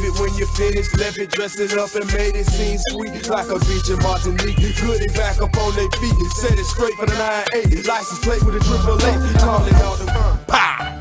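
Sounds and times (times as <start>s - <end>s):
rapping over a heavy bass beat: 0.0s - 10.9s.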